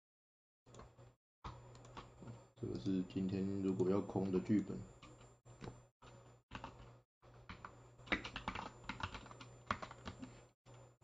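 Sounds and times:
typing on keyboard: 0:06.5 - 0:06.8, 0:07.5 - 0:10.3.

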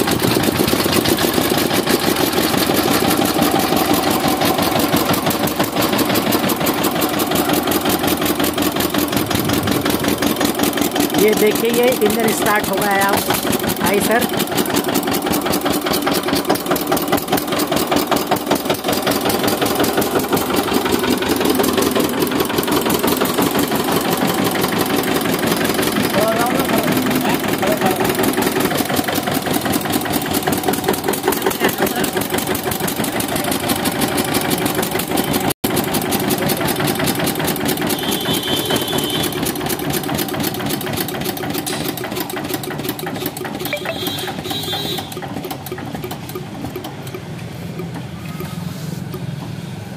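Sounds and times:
diesel engine running: 0:00.0 - 0:49.9.

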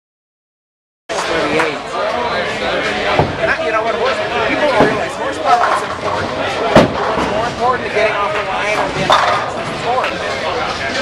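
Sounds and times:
chatter: 0:01.1 - 0:11.0.

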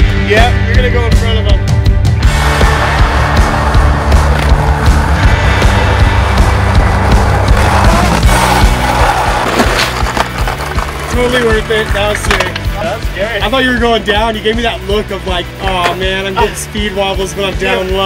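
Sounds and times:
music playing: 0:00.0 - 0:18.0
skateboard wheels rolling on asphalt: 0:06.5 - 0:12.6.

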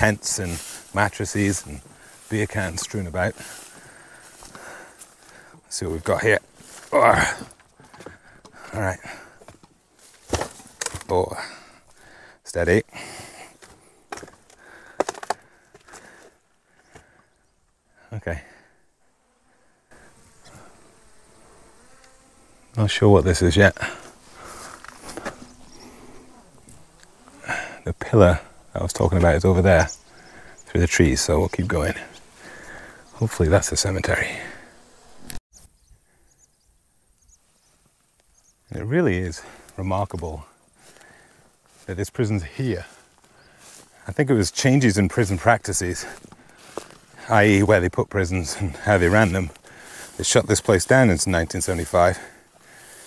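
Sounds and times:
sharp knocks and cracks: 0:09.4 - 0:11.1, 0:13.6 - 0:16.0
small high chirps: 0:35.5 - 0:38.7.

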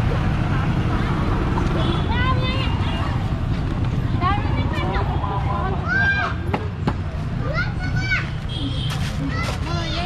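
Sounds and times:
children calling and shouting: 0:00.0 - 0:10.0.

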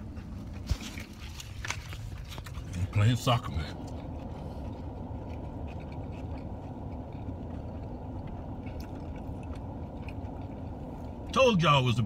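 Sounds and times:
low rumble inside car: 0:00.0 - 0:12.0.

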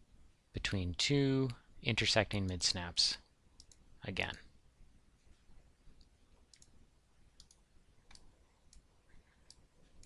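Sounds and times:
computer mouse clicks: 0:03.6 - 0:03.8, 0:06.0 - 0:06.8, 0:07.4 - 0:10.0.

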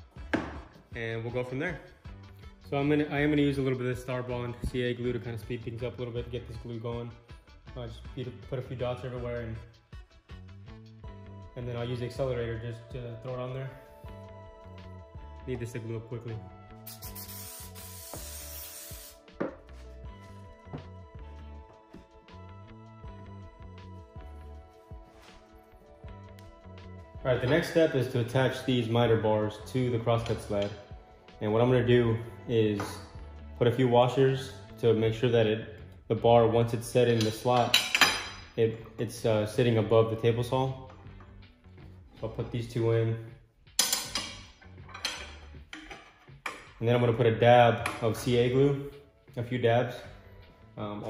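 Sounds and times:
aerosol can spraying hiss: 0:16.8 - 0:19.4
metal bar clanking: 0:43.8 - 0:46.7.

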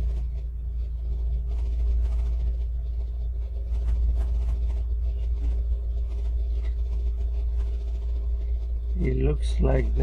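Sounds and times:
faint hum: 0:00.0 - 0:10.0
low rumble: 0:00.0 - 0:10.0.

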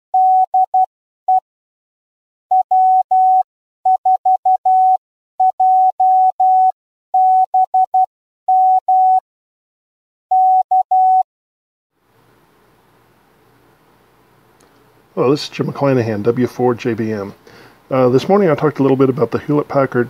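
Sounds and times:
morse code tone: 0:00.2 - 0:01.4, 0:02.5 - 0:09.2, 0:10.3 - 0:11.2.

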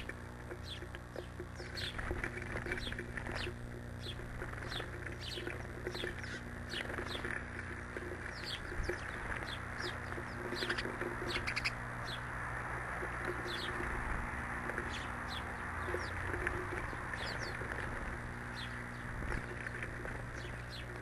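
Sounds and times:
songbirds chirping: 0:00.0 - 0:21.0
steady low hum: 0:00.0 - 0:21.0.

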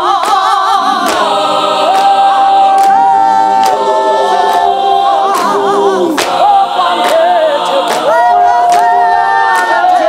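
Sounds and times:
mixed choir singing a cappella: 0:00.0 - 0:10.0
voice singing with vibrato: 0:00.0 - 0:10.0
clap and tap beat: 0:00.1 - 0:10.0.

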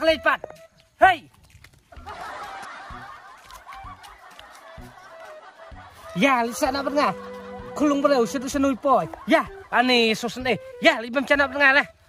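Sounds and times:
crowd laughing: 0:01.9 - 0:10.4.

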